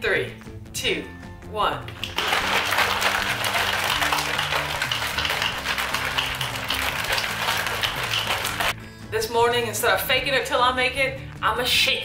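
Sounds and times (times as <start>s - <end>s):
background music: 0.0s - 12.0s
shaker bottle sloshing rattle: 1.9s - 8.7s.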